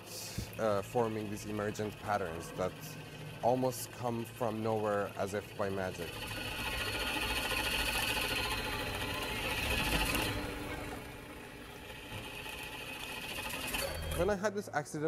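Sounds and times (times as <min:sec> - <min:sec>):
magnetic ball whirring buzz: 0:00.0 - 0:14.3.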